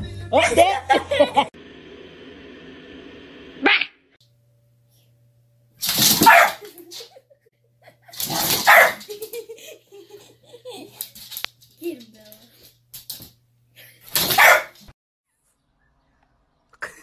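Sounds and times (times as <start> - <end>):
dog barking: 6.1 - 6.7, 8.3 - 9.1, 14.2 - 14.8.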